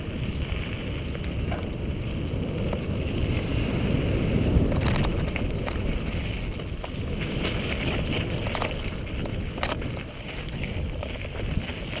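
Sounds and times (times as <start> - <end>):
bike tyres rumbling on dirt: 0.0 - 12.0
wind buffeting microphone: 0.0 - 12.0.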